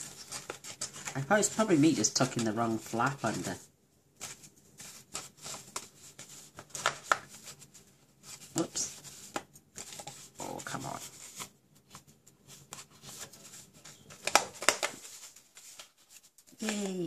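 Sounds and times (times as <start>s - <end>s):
paper rustling and tapping: 0.0s - 3.6s, 4.2s - 7.7s, 8.5s - 17.0s.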